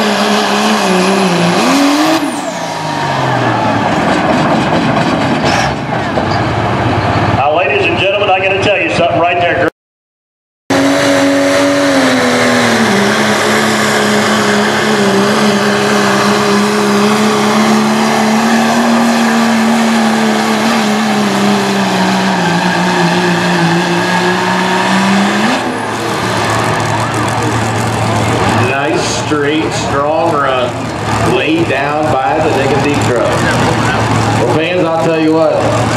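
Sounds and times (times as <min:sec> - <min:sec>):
diesel truck engine at full throttle: 0:00.0 - 0:09.7, 0:10.7 - 0:35.9.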